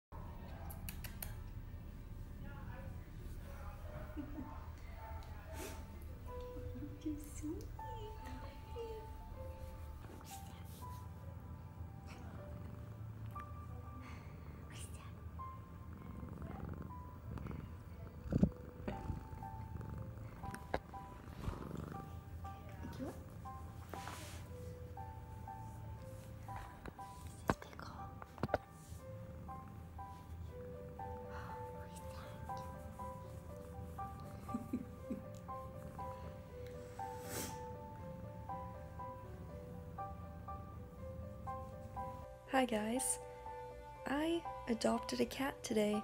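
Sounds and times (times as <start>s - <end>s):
cat purring: 0.2s - 46.0s
light background music: 0.2s - 46.0s.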